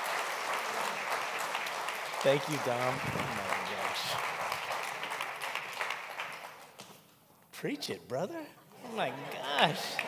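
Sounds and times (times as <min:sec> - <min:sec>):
congregation applauding: 0:00.0 - 0:06.8, 0:09.2 - 0:10.0.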